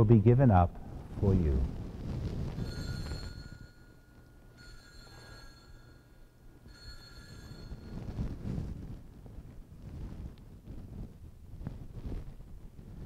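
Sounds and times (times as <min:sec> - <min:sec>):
altar bells ringing: 0:02.6 - 0:08.4.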